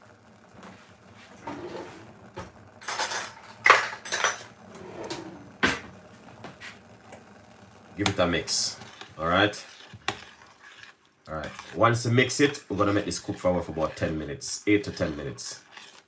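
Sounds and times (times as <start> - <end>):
metal utensils clinking: 2.8 - 4.5.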